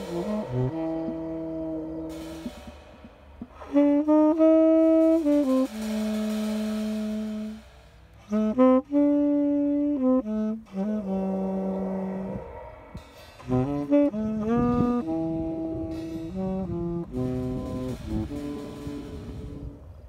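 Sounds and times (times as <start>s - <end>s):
drum kit played with mallets: 0.0s - 8.8s, 13.0s - 19.9s
tenor saxophone long low notes: 0.0s - 20.0s.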